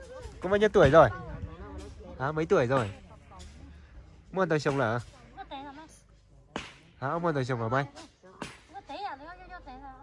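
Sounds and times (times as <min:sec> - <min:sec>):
sharp smack: 0:06.6 - 0:06.9, 0:08.4 - 0:08.7.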